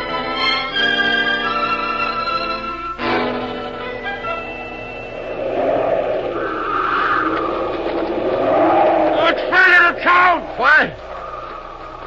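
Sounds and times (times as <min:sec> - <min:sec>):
howling wind gusts: 0:04.2 - 0:12.0
wind whooshing: 0:04.6 - 0:12.0.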